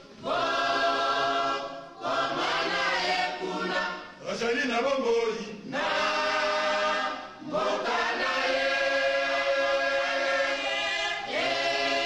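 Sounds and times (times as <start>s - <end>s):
male choir singing: 0.2s - 12.0s.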